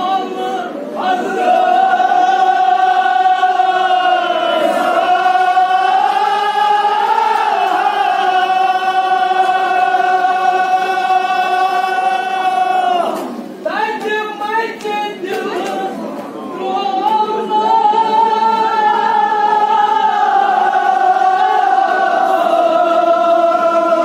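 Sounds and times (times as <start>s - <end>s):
men chanting together: 0.0s - 16.0s, 17.0s - 24.0s.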